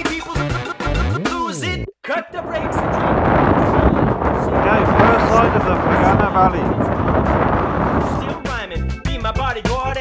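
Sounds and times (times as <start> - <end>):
wind buffeting microphone: 2.3 - 8.8
pop song with sung vocal: 8.1 - 10.0.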